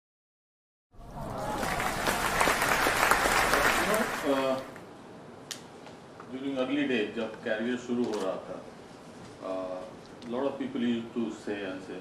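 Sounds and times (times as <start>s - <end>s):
audience applauding: 1.0s - 4.8s.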